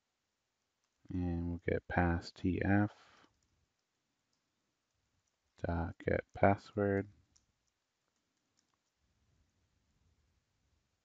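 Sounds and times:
faint keyboard clicks: 0.6 - 1.2, 3.1 - 6.4, 7.2 - 9.1.

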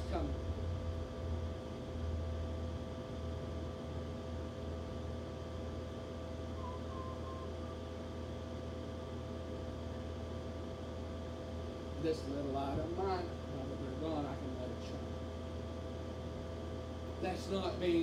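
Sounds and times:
low room hum: 0.0 - 18.0
faint whining tones: 6.2 - 8.5
faint short high tone: 6.5 - 7.9.

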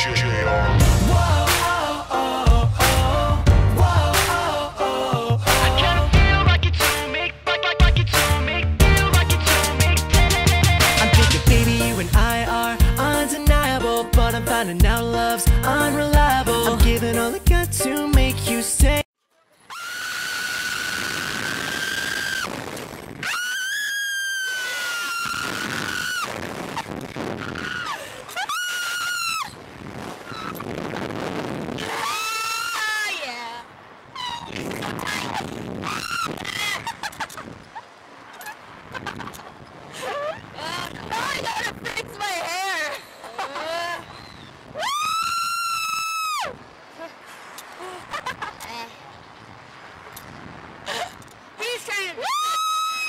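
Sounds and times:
people screaming: 19.7 - 29.6, 31.8 - 33.3, 34.1 - 37.4, 43.2 - 46.6, 52.2 - 53.0
rushing wind: 19.8 - 53.0
person screaming: 31.8 - 33.2.

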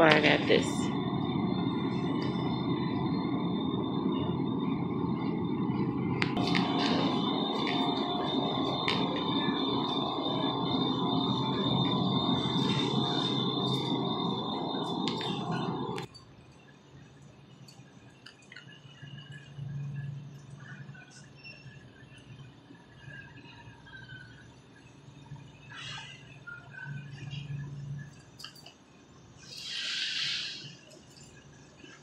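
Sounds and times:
faint high whine: 0.0 - 32.0
store background noise: 0.0 - 32.0.

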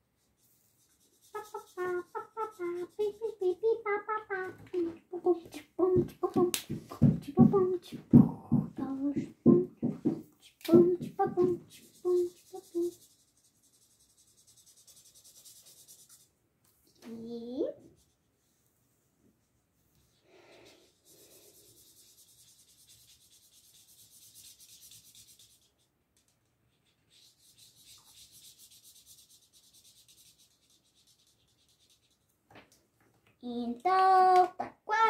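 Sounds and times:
marker scratching on paper: 0.3 - 8.2, 9.4 - 16.3, 20.8 - 32.3
child singing nonsense syllables: 1.0 - 13.3, 17.0 - 18.0, 33.4 - 35.0.

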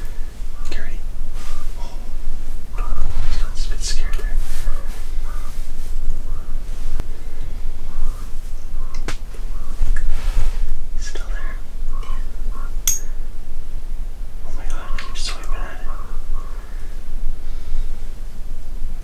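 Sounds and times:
steady low rumble: 0.0 - 19.0
whispered talk: 0.6 - 5.6, 11.0 - 12.4, 14.4 - 16.2.

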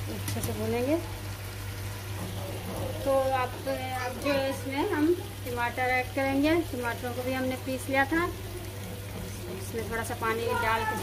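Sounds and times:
meat and potatoes sizzling in pot: 0.0 - 11.0.

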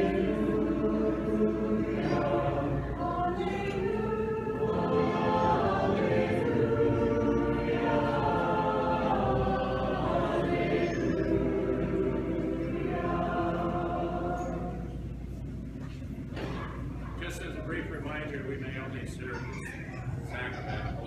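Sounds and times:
choir singing a hymn: 0.0 - 15.5.

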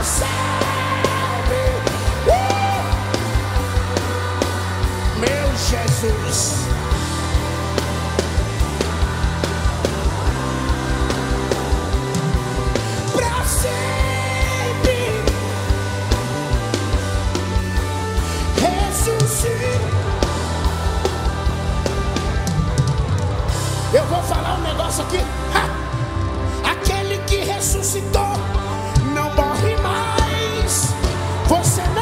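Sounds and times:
drum kit beating: 0.0 - 32.0
electric bass: 0.0 - 32.0
electric guitar: 0.0 - 32.0
worship band playing: 0.0 - 32.0.

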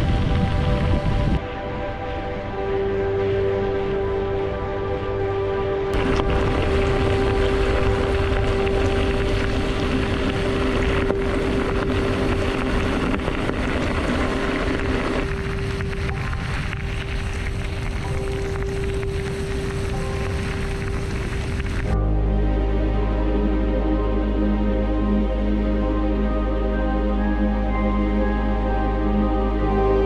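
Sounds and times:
bicycle tyres on gravel: 0.0 - 1.5, 5.9 - 22.0
wind on microphone: 0.0 - 4.8, 5.8 - 22.0
background music steady tone: 0.0 - 30.0.

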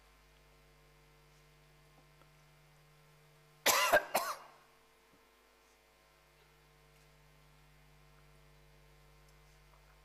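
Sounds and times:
man coughing: 3.7 - 4.6.

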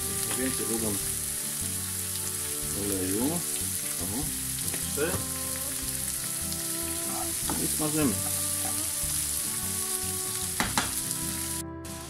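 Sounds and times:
meat and onion sizzling in fat: 0.0 - 12.0.

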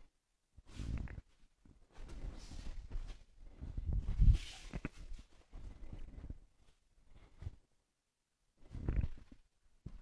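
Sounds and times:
bare feet on a mat: 0.6 - 7.8
clothing rustling: 0.6 - 7.8.

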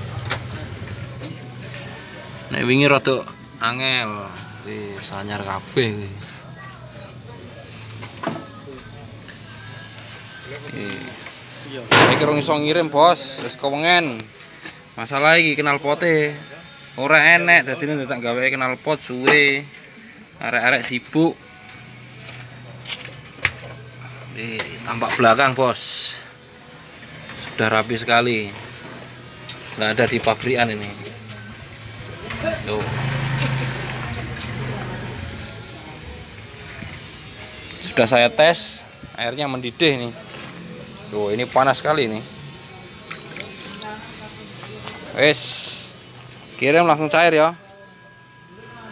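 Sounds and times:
faint background talk: 0.0 - 48.9
gas burner hissing: 20.7 - 47.2.

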